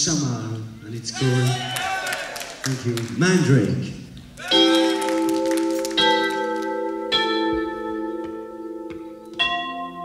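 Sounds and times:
ringing mallet percussion chords: 4.5s - 10.0s.

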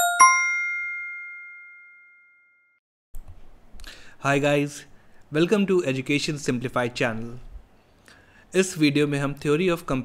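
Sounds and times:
two-note bell-like chime: 0.0s - 2.7s.

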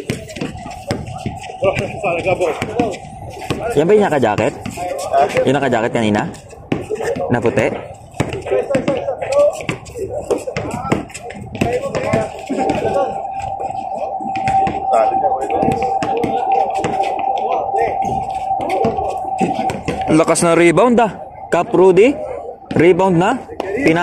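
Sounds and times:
voices of players and onlookers: 0.0s - 24.0s
steady tone: 0.4s - 5.7s, 12.1s - 24.0s.

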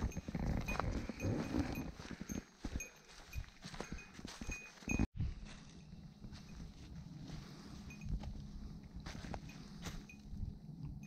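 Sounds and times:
faint high ringing: 0.0s - 11.0s
footsteps crunching through dry leaves: 0.8s - 10.1s.

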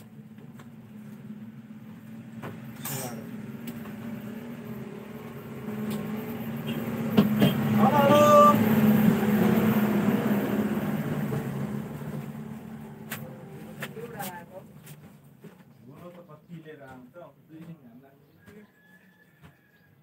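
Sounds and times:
vehicle passing by: 1.0s - 15.0s.

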